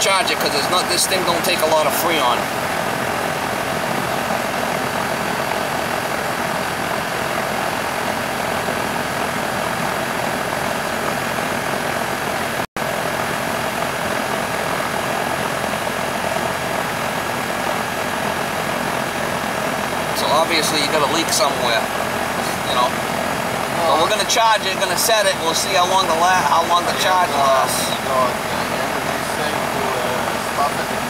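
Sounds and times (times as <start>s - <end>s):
air conditioner unit humming: 0.0s - 31.0s.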